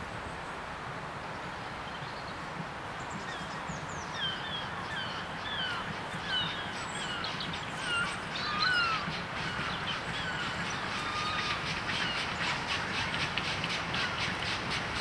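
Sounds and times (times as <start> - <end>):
low background noise: 0.0 - 15.0
birds chirping downward: 4.2 - 15.0.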